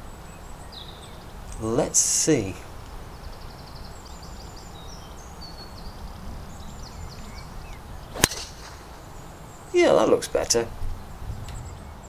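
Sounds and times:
birds chirping: 0.0 - 12.0
golf club striking ball: 8.1 - 9.1.

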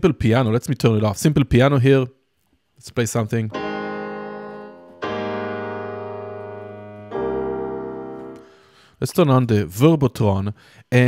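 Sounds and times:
piano chords ringing: 3.5 - 8.9.

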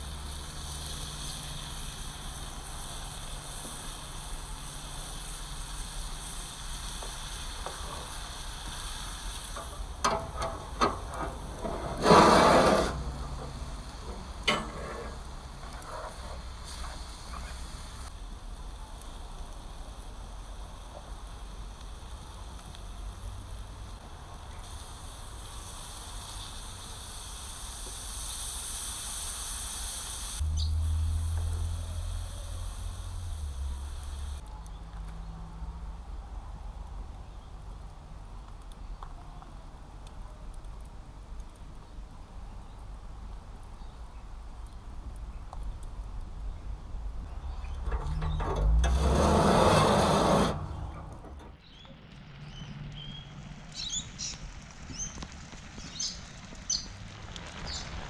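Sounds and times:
food sizzling in a frying pan: 0.0 - 34.4, 53.8 - 58.0.

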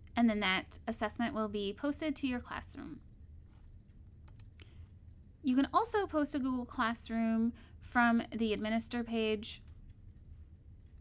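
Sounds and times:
low steady hum: 0.0 - 11.0
faint computer mouse clicks: 4.2 - 4.8.

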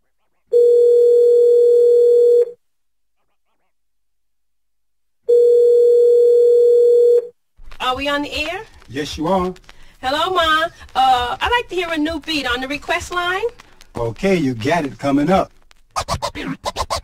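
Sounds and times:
telephone ringback tone: 0.6 - 2.6, 5.3 - 7.3
person speaking: 7.7 - 15.8.

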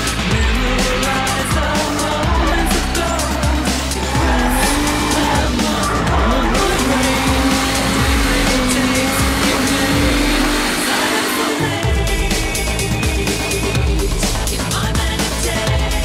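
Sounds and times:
car engine revving hard: 0.0 - 14.6
music track: 0.0 - 16.0
tyres squealing: 0.7 - 11.7.

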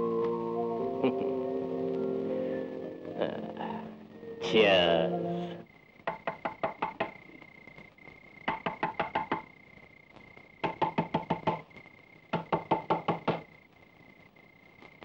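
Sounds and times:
faint steady high tone: 0.0 - 6.0, 11.4 - 15.0
rapid knocking on wooden door: 6.0 - 7.2, 8.5 - 9.5, 10.6 - 11.6, 12.3 - 13.5.

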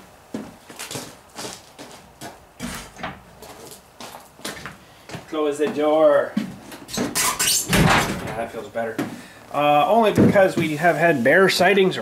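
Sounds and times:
shed door knocks and clunks: 2.6 - 3.3, 7.0 - 8.5, 10.0 - 10.7.

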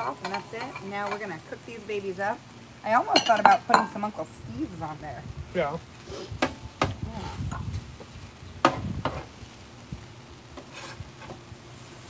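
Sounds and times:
metal spatula scraping on griddle: 0.0 - 1.3, 8.6 - 9.4, 10.6 - 12.0
light sizzle: 0.0 - 12.0.

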